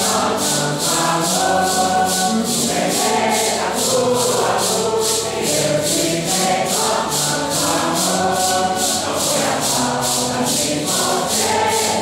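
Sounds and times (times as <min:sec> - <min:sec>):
congregation singing a hymn: 0:00.0 - 0:12.0
maracas shaking: 0:00.0 - 0:12.0.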